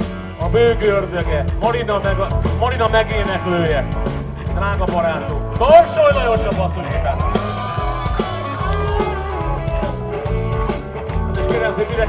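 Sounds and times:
bass guitar: 0.0 - 12.0
drums: 0.0 - 12.0.

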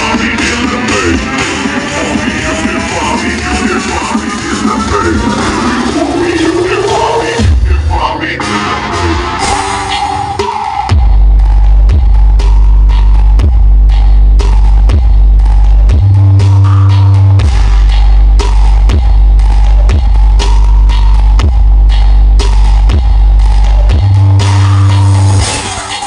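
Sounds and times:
loud electronic dance music: 0.0 - 26.0.

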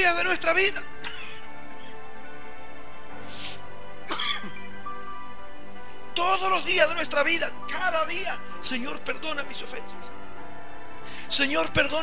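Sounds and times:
soft background music: 0.0 - 12.0
throat clearing: 4.1 - 4.6.

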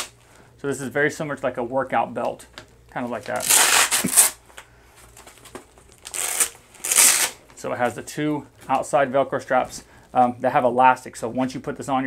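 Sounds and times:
velcro straps ripping apart: 3.2 - 4.4, 5.2 - 7.4.

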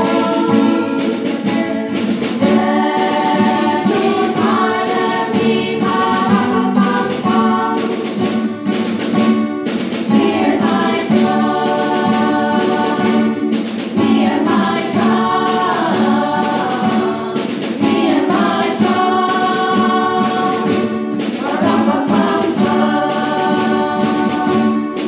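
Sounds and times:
women's choir singing: 0.0 - 9.0, 10.0 - 25.0
acoustic guitar: 0.0 - 25.0.

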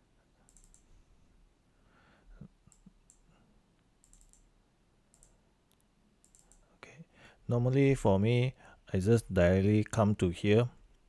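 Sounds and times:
computer mouse clicks: 0.5 - 0.9, 2.7 - 3.3, 4.0 - 4.5, 5.1 - 6.6.

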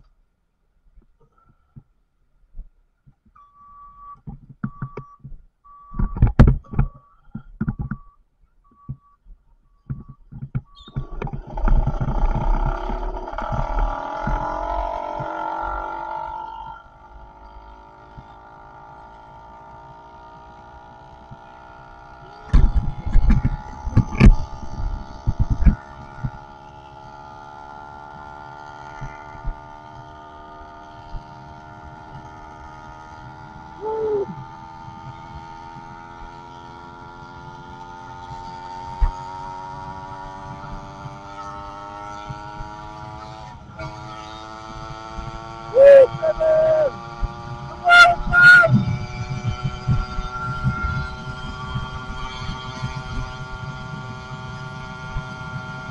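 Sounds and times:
two-stroke engine running: 9.9 - 55.9.

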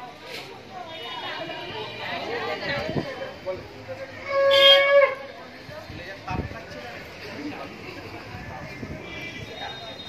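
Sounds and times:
people chattering: 0.0 - 10.0
conch shell blown: 4.2 - 5.3.

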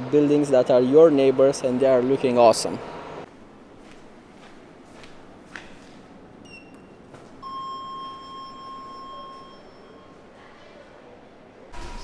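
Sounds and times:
long electronic beep: 7.4 - 10.2.

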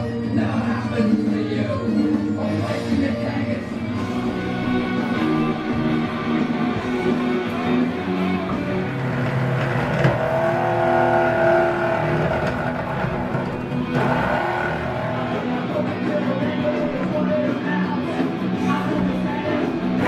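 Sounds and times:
background music: 0.0 - 20.0
electric drill whining: 4.0 - 15.6.

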